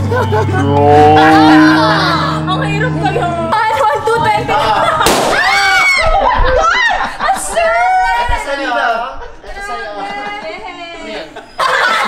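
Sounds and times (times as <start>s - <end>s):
balloon bursting: 5.0s - 5.8s.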